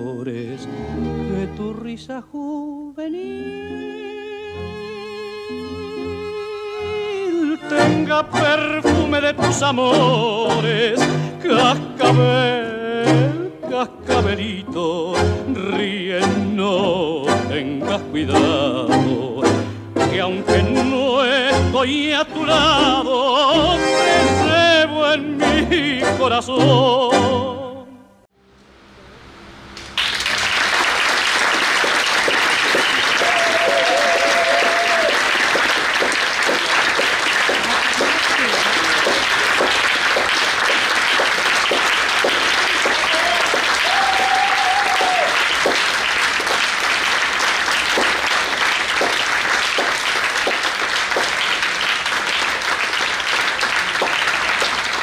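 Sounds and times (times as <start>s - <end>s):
audience applause: 30.0s - 55.0s
long calls from crowd: 32.6s - 36.1s, 42.6s - 45.8s.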